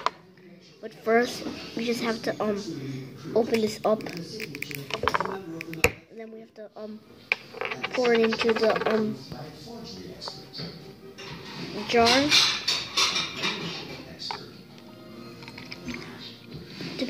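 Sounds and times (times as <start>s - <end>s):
faint background music: 0.0s - 17.0s.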